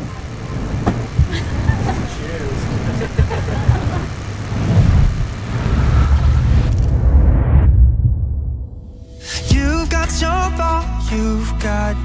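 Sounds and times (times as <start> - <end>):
indistinct voices: 0.0 - 6.8
steady low rumble: 0.0 - 9.7.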